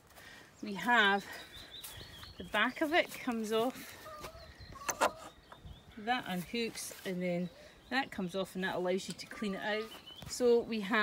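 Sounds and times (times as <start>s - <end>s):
hens clucking: 3.3s - 5.6s.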